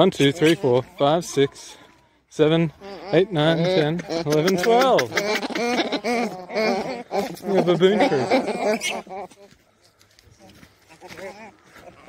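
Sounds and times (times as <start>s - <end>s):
young baboons calling: 0.0s - 1.4s, 2.6s - 9.5s, 10.8s - 12.0s.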